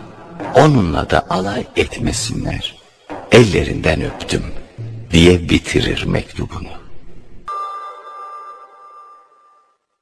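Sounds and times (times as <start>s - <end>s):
bell-like ringing tone: 7.5s - 10.0s.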